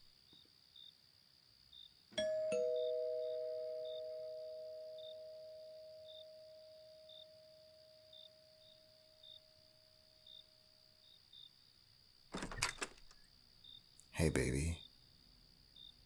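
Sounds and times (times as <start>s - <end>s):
two-tone doorbell chime: 2.2s - 7.1s
door latch clicks and knocks: 12.3s - 13.2s.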